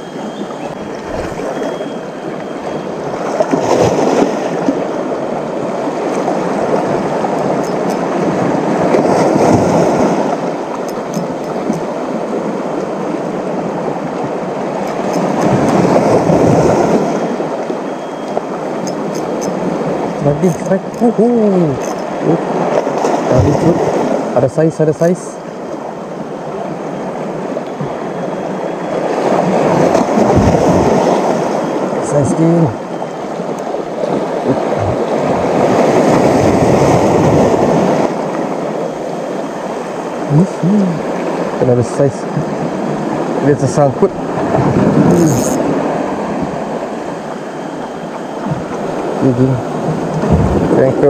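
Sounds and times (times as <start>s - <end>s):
sea waves on rocky shore: 0.0s - 51.0s
sea waves splashing on rocks: 0.9s - 2.4s, 3.0s - 17.8s, 29.0s - 32.7s.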